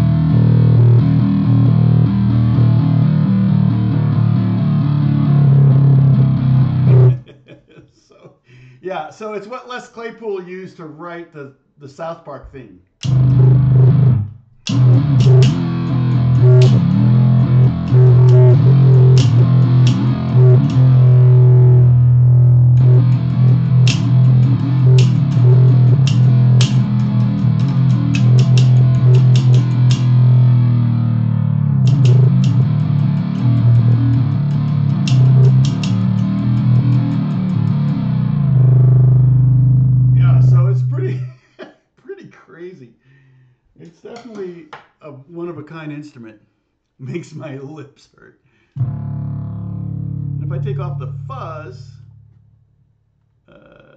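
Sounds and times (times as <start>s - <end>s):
distorted bass note: 0.0s - 7.2s, 13.0s - 41.2s, 48.8s - 53.1s
drumstick hitting bass string: 13.0s - 40.9s, 48.8s - 52.6s.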